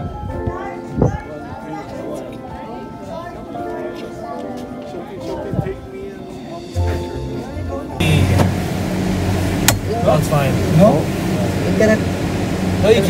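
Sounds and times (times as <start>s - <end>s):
people talking: 0.0s - 8.6s, 9.8s - 12.2s, 12.8s - 13.0s
background music: 0.0s - 12.9s
low cabin hum: 8.0s - 13.0s.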